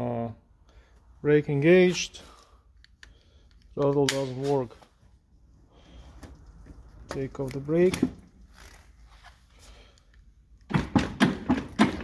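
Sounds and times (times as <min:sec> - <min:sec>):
person speaking: 0:01.2 - 0:02.6, 0:03.7 - 0:04.9, 0:06.9 - 0:08.2.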